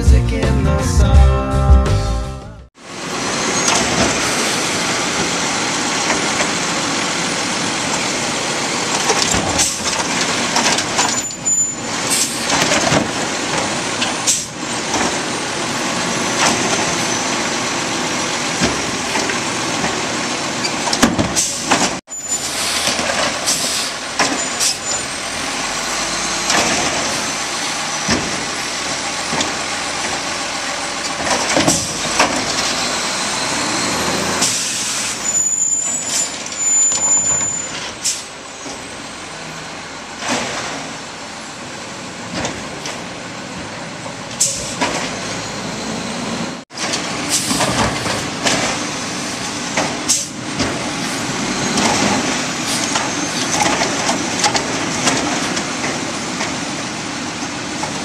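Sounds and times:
garbage truck diesel engine: 0:00.0 - 0:58.0
carts thumping and clattering: 0:07.5 - 0:33.0, 0:42.2 - 0:43.1, 0:44.0 - 0:45.2, 0:46.7 - 0:58.0
air brakes hissing: 0:09.5 - 0:09.9, 0:11.1 - 0:12.6, 0:14.1 - 0:14.6, 0:21.3 - 0:29.6, 0:31.8 - 0:39.1, 0:44.4 - 0:46.4, 0:47.1 - 0:48.2, 0:48.8 - 0:53.7.

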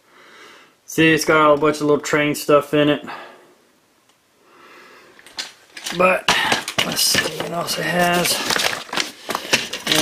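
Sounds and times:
person speaking: 0:05.8 - 0:10.0.

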